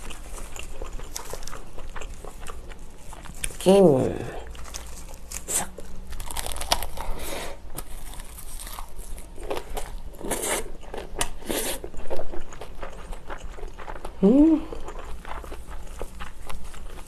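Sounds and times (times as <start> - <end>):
crunchy chewing: 0.0 - 3.6, 4.4 - 17.0
dried seaweed crackling: 0.0 - 10.0.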